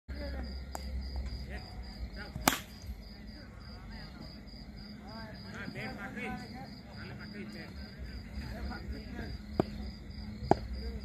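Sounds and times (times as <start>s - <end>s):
cricket bat striking ball: 2.4s - 2.9s, 9.5s - 9.8s, 10.4s - 10.8s.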